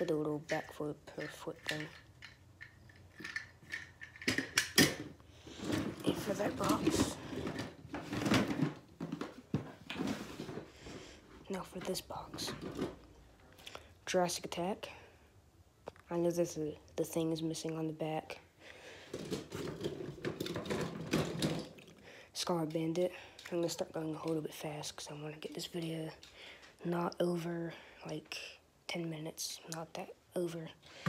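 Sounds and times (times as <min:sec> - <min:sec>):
toy trucks clicking and rattling: 0:00.0 - 0:07.8
plastic drawer scraping rattle: 0:05.6 - 0:10.6, 0:19.2 - 0:21.7
knocks of toys in plastic drawer: 0:19.2 - 0:21.8.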